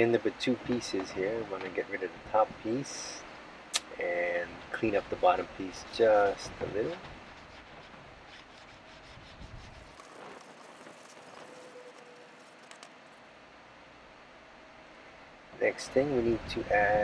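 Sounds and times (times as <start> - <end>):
sanding pad rubbing plastic: 6.6 - 13.2.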